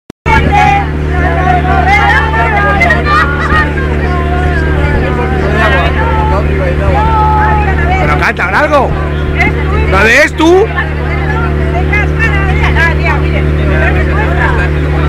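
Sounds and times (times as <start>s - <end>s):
engine running: 0.3s - 15.0s
people's overlapping voices: 0.3s - 15.0s.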